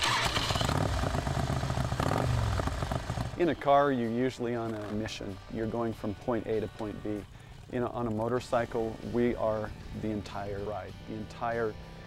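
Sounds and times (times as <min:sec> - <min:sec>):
motorcycle engine starting and running: 0:00.0 - 0:11.4.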